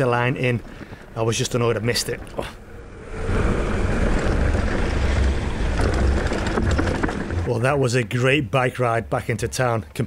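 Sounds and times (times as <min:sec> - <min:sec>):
wind rushing over microphone: 0:02.5 - 0:07.5.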